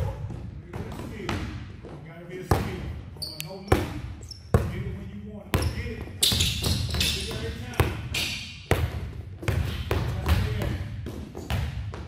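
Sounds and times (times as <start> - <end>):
basketballs bouncing on court: 0.0 - 3.0, 3.6 - 12.0.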